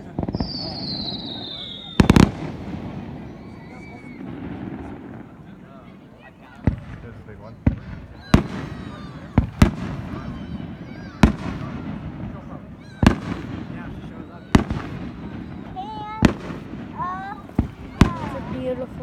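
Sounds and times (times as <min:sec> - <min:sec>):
fireworks bursting: 0:00.0 - 0:19.0.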